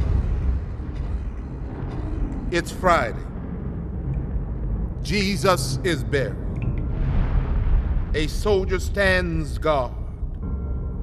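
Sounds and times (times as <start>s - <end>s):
deep low rumble: 0.0s - 11.0s
heavy boom: 5.4s - 10.2s.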